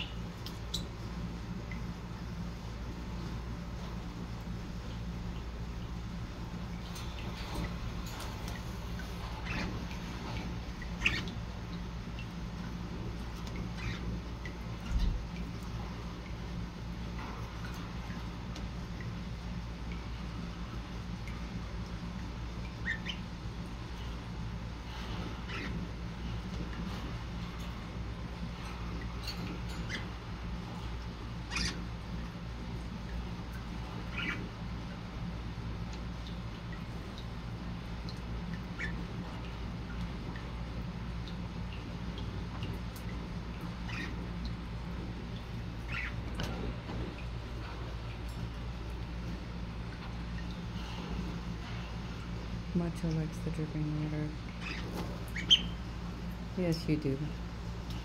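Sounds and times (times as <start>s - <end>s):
low background hum: 0.0s - 58.0s
budgerigar chirping: 55.4s - 55.8s.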